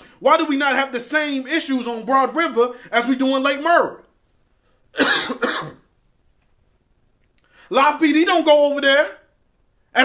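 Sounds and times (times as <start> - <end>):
man coughing: 4.9 - 5.9.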